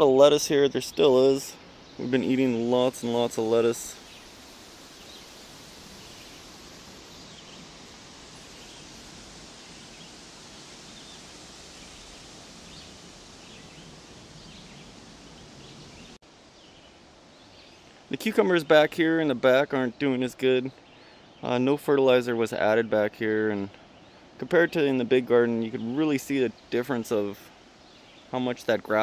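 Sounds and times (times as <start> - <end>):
faint background hiss: 0.0 - 29.0.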